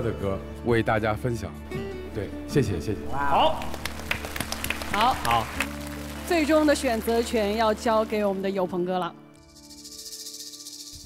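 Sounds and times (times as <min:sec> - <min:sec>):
high hissing shaker rattle: 0:09.4 - 0:11.0.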